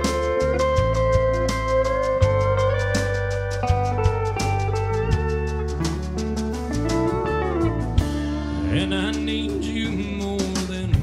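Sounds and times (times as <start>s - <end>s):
steel guitar sliding: 0.0s - 10.9s
country band playing: 0.0s - 11.0s.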